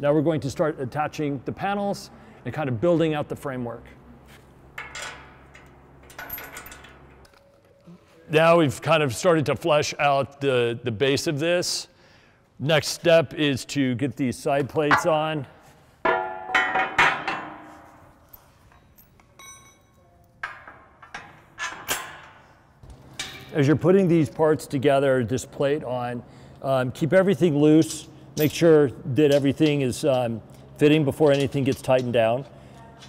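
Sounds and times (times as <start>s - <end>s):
metal parts clanking: 4.8s - 7.6s, 14.9s - 15.4s, 16.0s - 22.4s
metal plates clanking: 14.8s - 19.7s
high metal clink: 14.9s - 15.5s, 16.1s - 21.9s.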